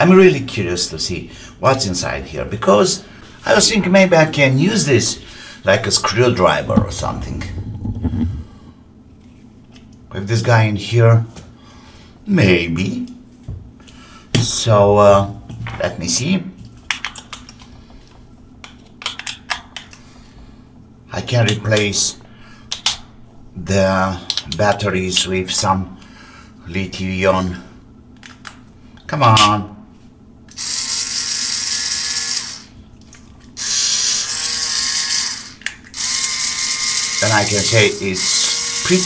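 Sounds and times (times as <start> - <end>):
electric grinder motor whirring: 30.5 - 32.7, 33.6 - 39.0.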